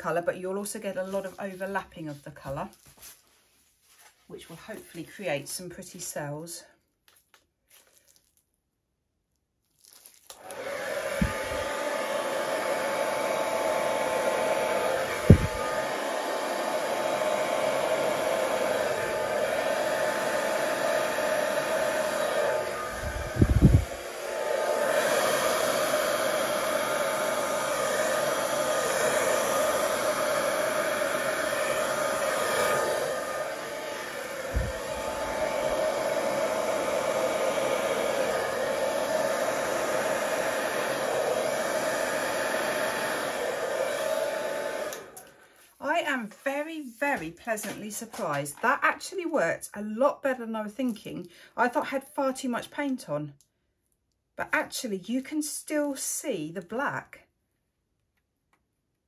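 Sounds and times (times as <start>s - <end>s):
hairdryer blowing: 0.0s - 1.8s, 10.3s - 48.8s
low thumps: 15.2s - 15.6s.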